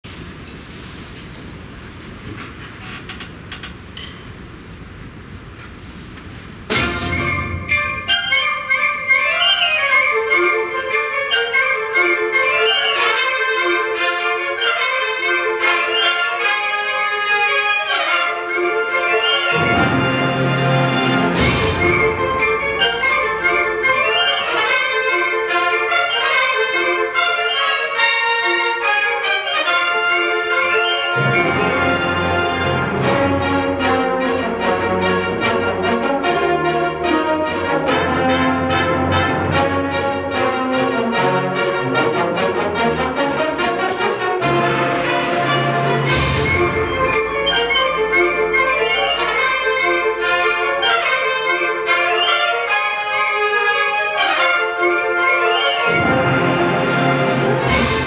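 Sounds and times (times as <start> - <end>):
room noise hiss: 0.1 - 7.0
wind band playing sustained chords: 6.7 - 58.0.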